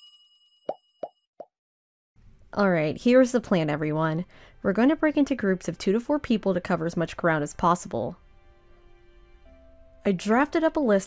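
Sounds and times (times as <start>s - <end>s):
bell-like chime ringing: 0.0s - 1.2s.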